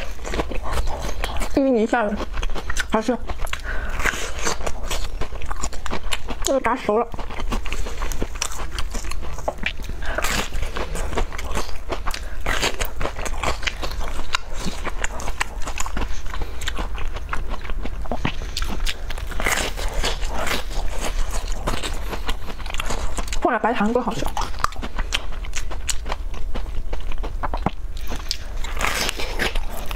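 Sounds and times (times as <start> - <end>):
crunchy chewing of pastry: 0.0 - 29.9.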